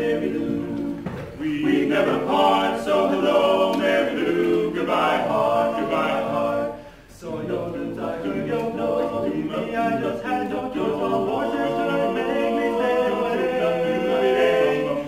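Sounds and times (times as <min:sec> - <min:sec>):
male quartet singing a cappella: 0:00.0 - 0:15.0.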